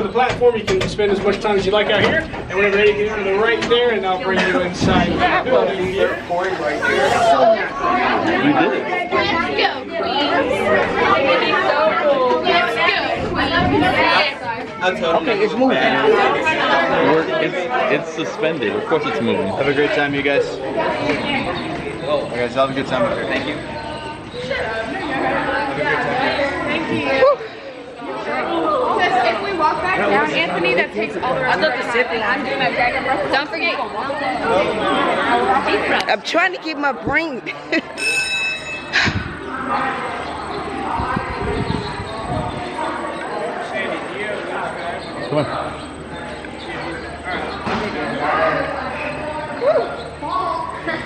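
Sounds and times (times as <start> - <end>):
crowd chatter: 0.0 - 51.0.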